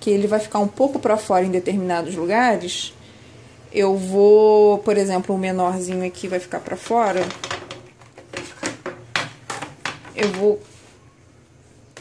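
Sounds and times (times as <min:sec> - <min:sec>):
picture frames clicking and knocking: 0:06.7 - 0:10.6.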